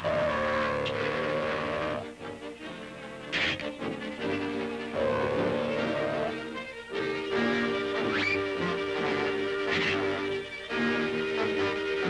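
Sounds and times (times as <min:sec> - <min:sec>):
loud sustained pitched drone: 0:00.0 - 0:02.1, 0:04.9 - 0:06.4.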